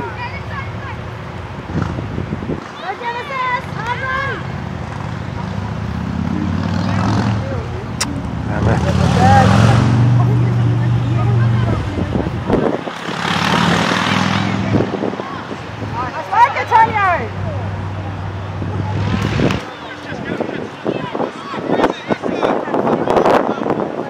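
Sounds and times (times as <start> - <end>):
vehicle engine rumble: 0.0 - 24.0
players and spectators shouting: 15.0 - 18.8, 19.6 - 24.0.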